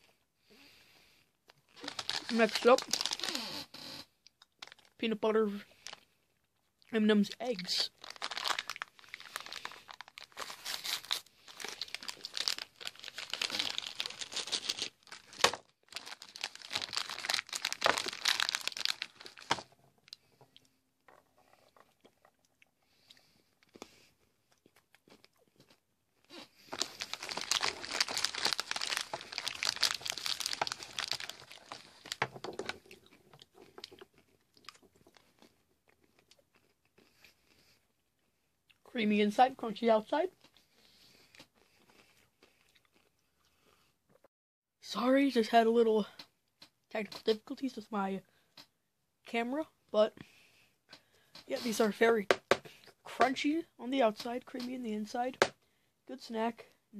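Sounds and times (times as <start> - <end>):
crunching and chewing candy: 1.5 - 3.6, 4.3 - 5.0, 5.7 - 6.9, 7.5 - 38.8, 40.4 - 44.3
plastic wrapper crinkling: 1.7 - 3.7, 4.4 - 5.0, 5.7 - 6.0, 7.5 - 20.4, 26.6 - 36.8.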